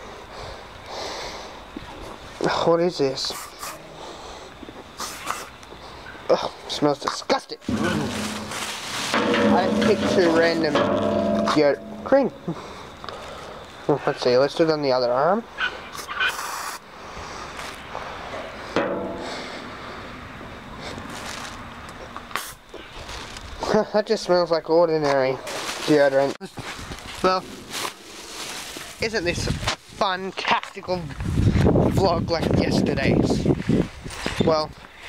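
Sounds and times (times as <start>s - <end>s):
faint steady background noise: 0.0s - 35.0s
person sniffing: 5.0s - 5.5s.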